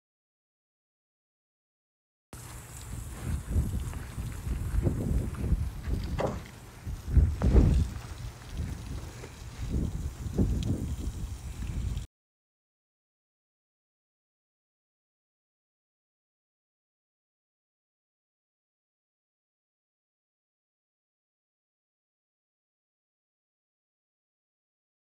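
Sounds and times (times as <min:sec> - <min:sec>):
garden hose spraying water: 0:02.4 - 0:12.1
low microphone rumble: 0:02.5 - 0:12.0.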